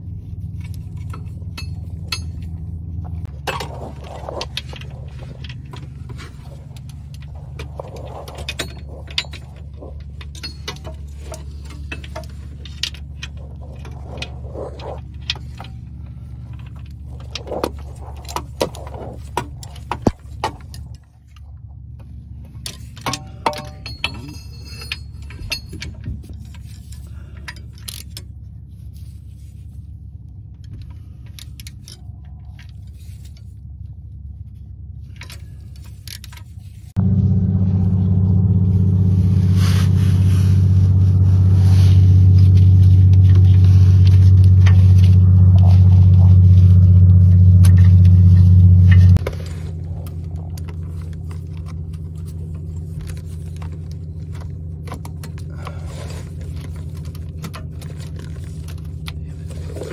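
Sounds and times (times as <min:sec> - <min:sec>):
low steady hum: 0:00.0 - 0:59.9
metal hand tools clinking: 0:00.8 - 0:15.9, 0:22.6 - 0:28.2
loud droning machine hum: 0:35.1 - 0:59.9.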